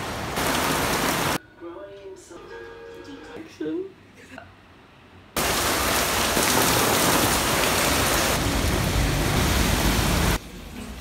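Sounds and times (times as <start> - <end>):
heavy rain pouring: 0.0 - 1.4, 5.4 - 11.0.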